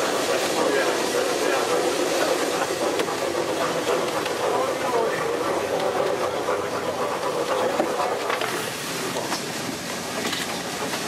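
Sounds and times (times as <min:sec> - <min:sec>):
passengers' voices: 0:00.0 - 0:11.0
rail carriage rumble and rattle: 0:00.0 - 0:11.0.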